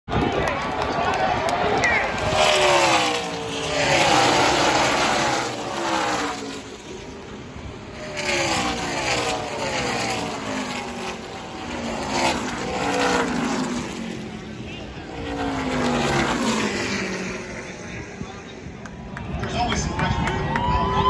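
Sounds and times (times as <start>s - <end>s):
crowd cheering and shouting: 0.1s - 2.8s, 19.2s - 21.0s
race car engines passing: 0.1s - 21.0s.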